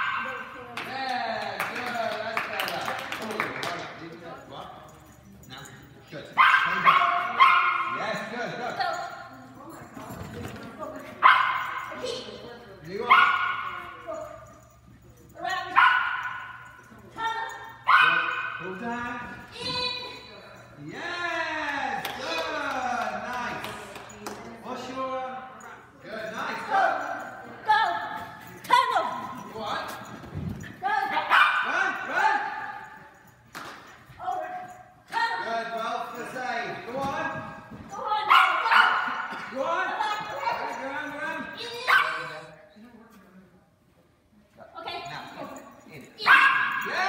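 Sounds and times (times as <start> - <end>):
small dog barking: 6.4 - 8.0, 11.2 - 11.8, 15.8 - 16.6, 17.9 - 18.6, 31.3 - 31.7, 38.3 - 39.3, 41.9 - 42.3, 46.2 - 46.9
small dog barking with echo: 6.4 - 8.0, 17.9 - 18.6, 46.3 - 46.8.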